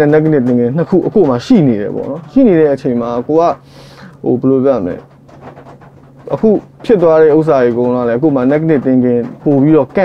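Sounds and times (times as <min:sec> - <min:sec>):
man talking: 0:00.0 - 0:05.1, 0:06.3 - 0:10.0.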